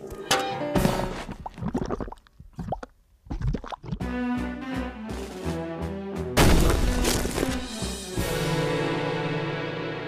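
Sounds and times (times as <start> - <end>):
cartoon liquid dripping plops: 1.4 - 4.1.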